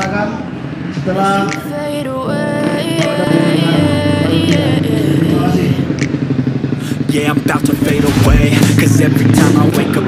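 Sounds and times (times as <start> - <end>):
background music: 0.0 - 10.0
motorcycle engine running: 3.6 - 10.0.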